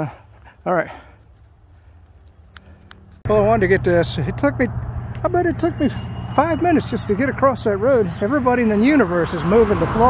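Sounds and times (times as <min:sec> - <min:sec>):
small ticks: 0:01.3 - 0:03.2.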